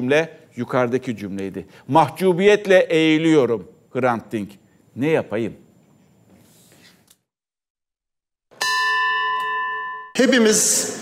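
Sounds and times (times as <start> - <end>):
bell-like chime ringing: 8.5 - 10.4.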